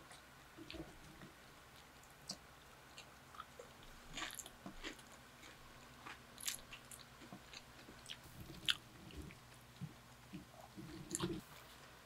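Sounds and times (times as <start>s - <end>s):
electric fan hum: 0.0s - 12.0s
chewing and crisp crunches: 0.1s - 11.5s.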